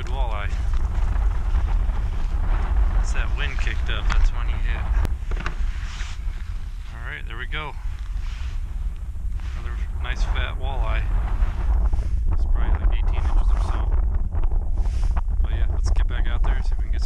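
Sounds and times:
wind buffeting microphone: 0.0s - 17.0s
person speaking: 9.5s - 11.2s.

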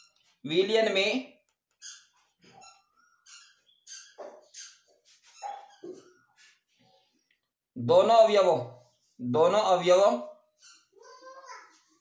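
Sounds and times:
marker squeaking on paper: 0.0s - 0.4s, 1.7s - 6.8s, 10.4s - 12.0s.

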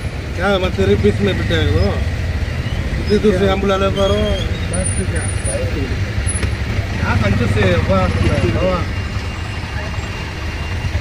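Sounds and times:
auto-rickshaw engine droning: 0.0s - 11.0s
voices talking: 0.0s - 11.0s.

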